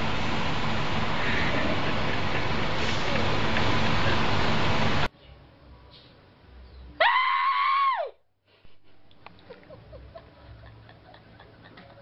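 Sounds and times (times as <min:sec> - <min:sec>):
shrill high-pitched scream: 0:07.0 - 0:08.2.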